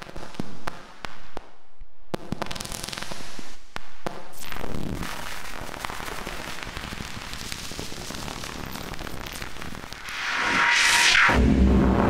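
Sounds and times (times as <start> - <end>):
dense crackling and popping: 4.4 - 10.1.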